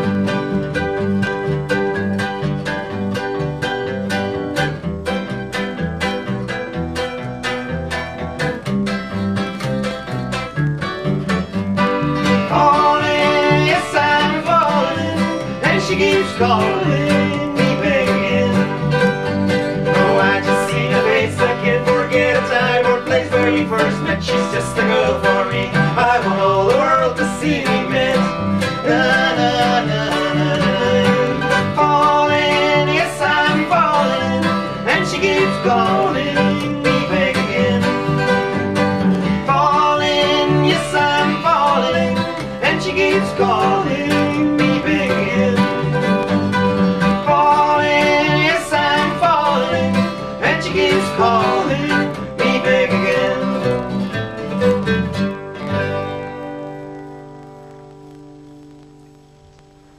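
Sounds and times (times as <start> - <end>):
plucked double bass: 0.0 - 57.5
mandolin picking: 0.0 - 58.2
strummed acoustic guitar: 0.0 - 59.8.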